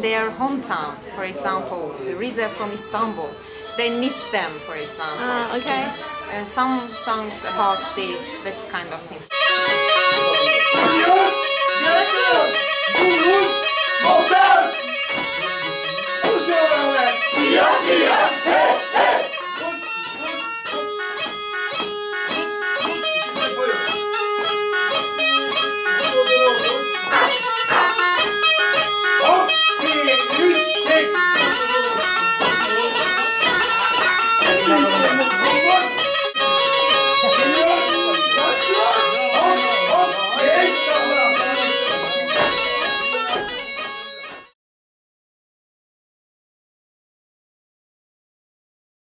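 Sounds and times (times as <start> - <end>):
bagpipe melody of quick notes: 1.6 - 44.6.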